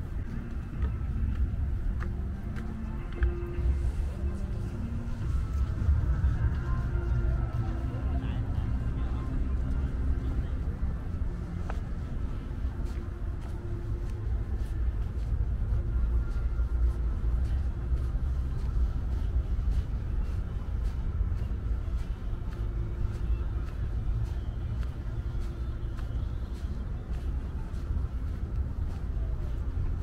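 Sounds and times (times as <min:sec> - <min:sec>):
faint voices: 0:00.0 - 0:30.0
low city rumble: 0:00.0 - 0:30.0
soft footsteps: 0:00.0 - 0:30.0.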